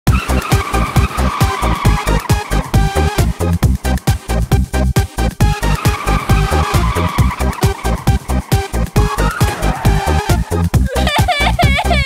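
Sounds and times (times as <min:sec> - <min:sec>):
cartoon tyres screeching: 0:00.1 - 0:12.0.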